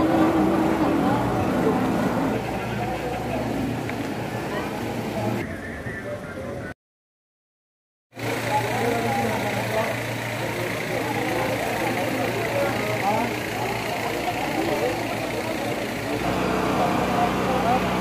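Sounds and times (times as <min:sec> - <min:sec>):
engine hum: 0:00.0 - 0:05.4, 0:08.2 - 0:18.0
crowd voices mingling: 0:00.0 - 0:06.8, 0:08.2 - 0:18.0.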